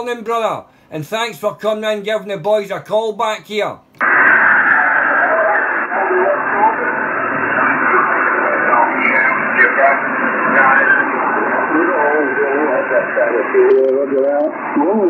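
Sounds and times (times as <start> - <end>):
faint man's voice on radio: 4.0 - 15.0
radio static hiss: 4.0 - 15.0.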